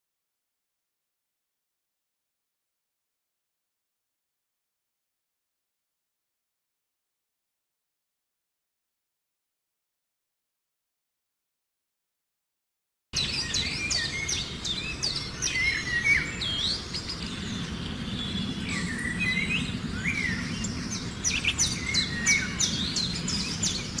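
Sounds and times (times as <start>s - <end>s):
birds chirping: 13.2s - 24.0s
outdoor background hiss: 13.2s - 24.0s.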